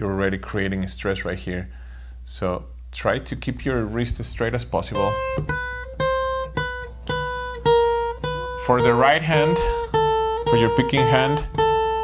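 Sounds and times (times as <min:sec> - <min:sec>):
acoustic guitar picked notes: 0:03.7 - 0:12.0.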